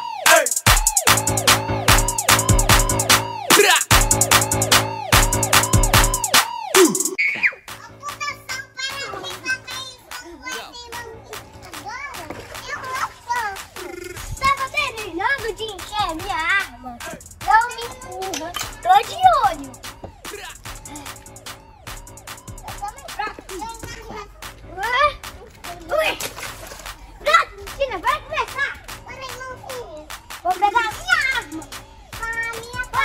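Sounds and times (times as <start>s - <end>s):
background music: 0.0s - 33.0s
young child's voice: 7.8s - 16.8s, 27.2s - 33.0s
pool water splashing: 11.0s - 14.7s, 25.2s - 27.4s
toy splashing into pool: 12.1s - 13.6s, 26.0s - 26.9s.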